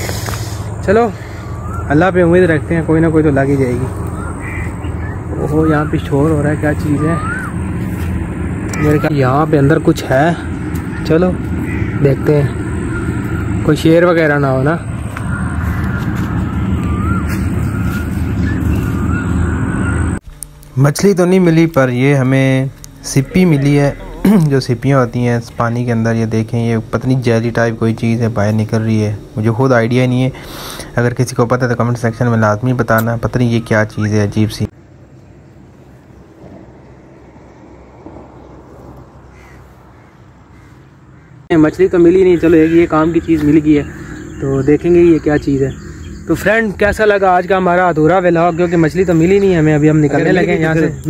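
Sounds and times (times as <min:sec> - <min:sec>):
crows cawing: 0:03.4 - 0:09.4, 0:10.0 - 0:20.2, 0:22.7 - 0:24.7, 0:39.0 - 0:46.9.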